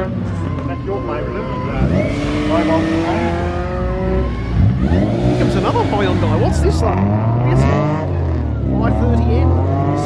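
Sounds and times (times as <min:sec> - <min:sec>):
low rumble of other engines: 0:00.0 - 0:10.0
race car engine pulling away: 0:00.0 - 0:10.0.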